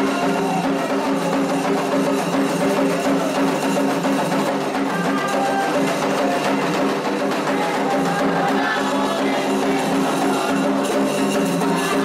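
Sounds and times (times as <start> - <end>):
hand drums playing rhythm: 0.0 - 12.0.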